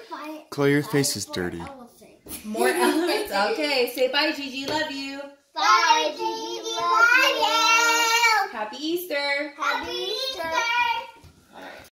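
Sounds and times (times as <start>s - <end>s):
child's sing-song voice: 5.6s - 8.5s, 9.5s - 11.4s.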